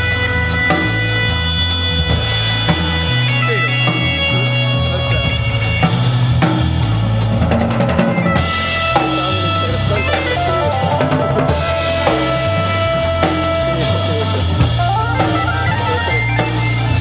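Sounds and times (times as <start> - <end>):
drum kit: 0.0 - 17.0
low bass line: 0.0 - 17.0
sustained higher notes: 8.2 - 17.0.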